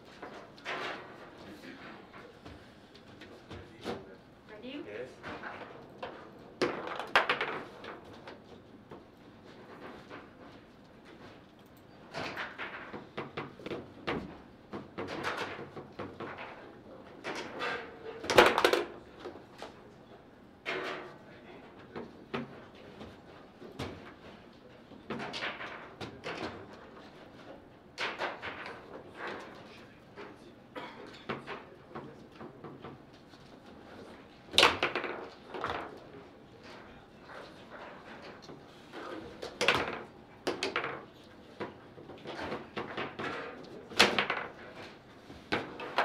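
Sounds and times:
ball rattling off table walls: 0:05.3 - 0:08.4, 0:12.1 - 0:19.4, 0:25.1 - 0:27.2, 0:28.0 - 0:29.6, 0:34.5 - 0:36.8, 0:39.0 - 0:46.0.

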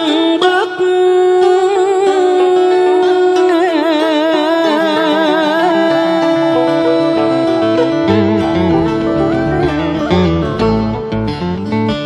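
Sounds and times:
plucked guitar melody: 0:00.0 - 0:12.0
steady held note: 0:05.4 - 0:11.3.

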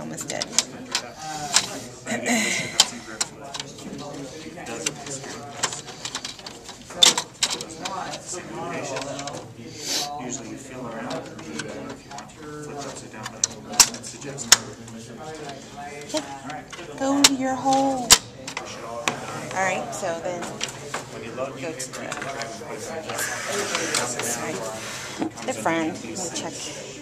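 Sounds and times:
low background talk: 0:00.0 - 0:27.0.

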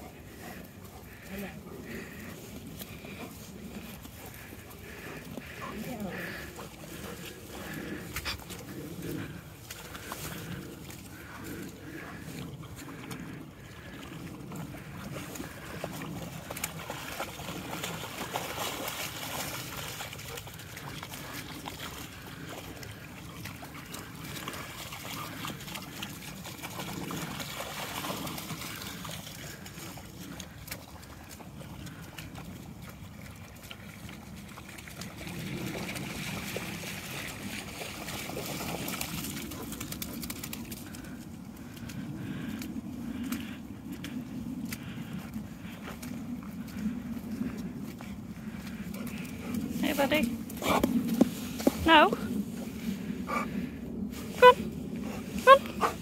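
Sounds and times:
dogs splashing through water: 0:00.0 - 0:56.0.

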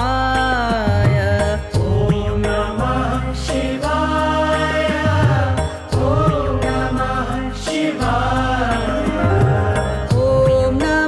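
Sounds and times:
chanted mantra singing: 0:01.4 - 0:11.0.

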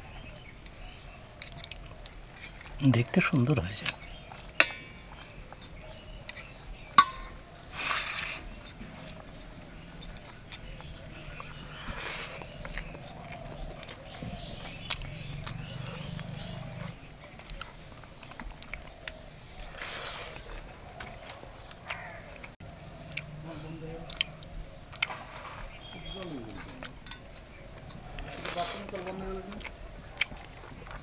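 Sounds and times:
chewing: 0:00.1 - 0:07.8, 0:08.4 - 0:31.0
sharp clink on plate: 0:07.0 - 0:07.4.

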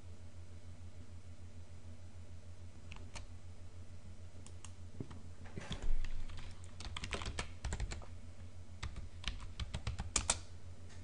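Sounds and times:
computer keyboard typing: 0:05.7 - 0:08.1, 0:08.8 - 0:10.4.

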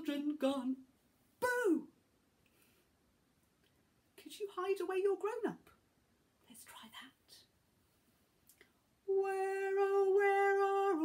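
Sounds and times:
woman whispering: 0:06.4 - 0:07.5.

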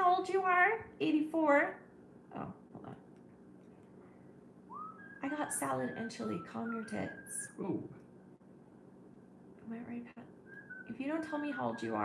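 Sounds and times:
rising whistle-like tone: 0:04.7 - 0:07.9, 0:10.4 - 0:12.0.

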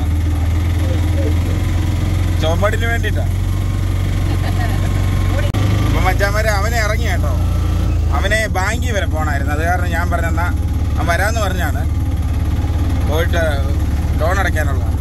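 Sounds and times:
auto-rickshaw engine running: 0:00.0 - 0:15.0.

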